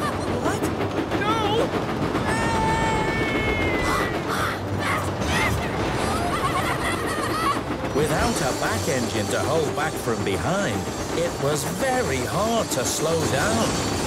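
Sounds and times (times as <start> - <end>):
cartoon steam engine rumble: 0.0 - 14.0.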